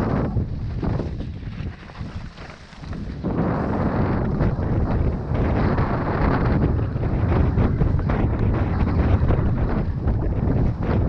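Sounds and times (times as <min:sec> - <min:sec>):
bike rattling: 0:00.0 - 0:11.0
bike tyres rumbling on dirt: 0:00.0 - 0:11.0
wind rushing over microphone: 0:00.0 - 0:11.0.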